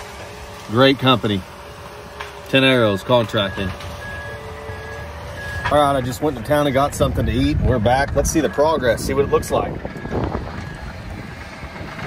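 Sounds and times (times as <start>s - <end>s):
utility vehicle engine driving: 0.0s - 12.0s
wind on microphone: 6.9s - 12.0s.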